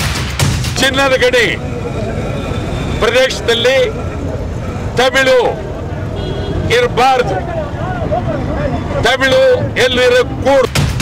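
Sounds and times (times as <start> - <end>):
street and crowd noise: 0.0 - 11.0
man speaking: 0.8 - 5.9, 6.6 - 10.8.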